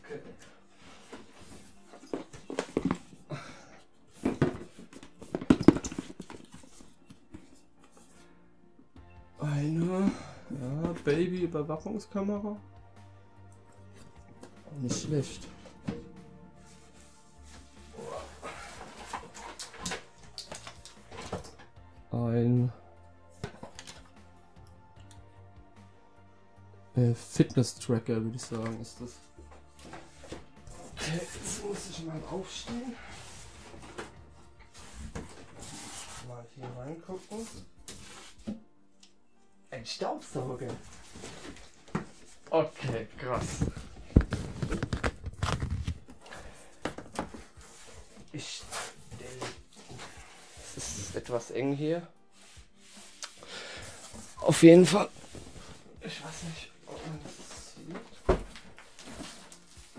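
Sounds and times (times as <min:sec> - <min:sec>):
cardboard packaging rustling: 0:29.8 - 0:38.4, 0:40.4 - 0:51.2, 0:53.9 - 0:59.9
cardboard scraping and rustling: 0:29.9 - 0:36.3.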